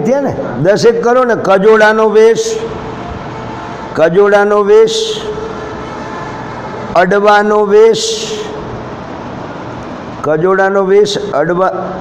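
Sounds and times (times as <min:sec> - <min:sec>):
man speaking: 0:00.0 - 0:02.9, 0:03.9 - 0:05.5, 0:06.9 - 0:08.7, 0:10.2 - 0:12.0
room hiss and hum: 0:00.0 - 0:12.0.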